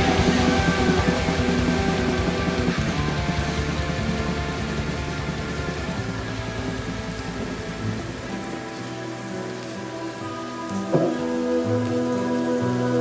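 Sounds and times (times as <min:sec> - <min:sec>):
ambient held musical notes: 0:00.0 - 0:13.0
steady rain hiss: 0:00.0 - 0:13.0.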